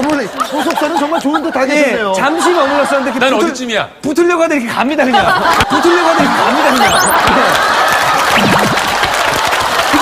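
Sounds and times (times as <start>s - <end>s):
audience applauding: 6.6s - 10.0s.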